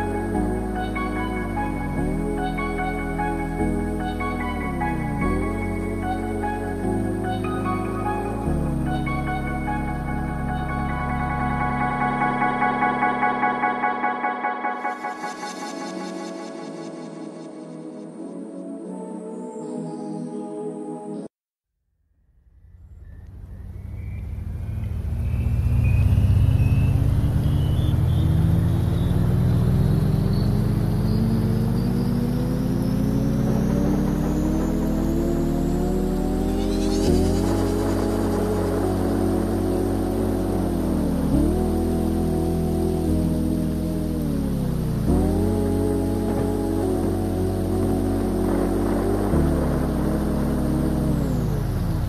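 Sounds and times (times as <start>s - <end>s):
engine-like tone rising in pitch: 0.0s - 17.6s, 22.3s - 52.0s.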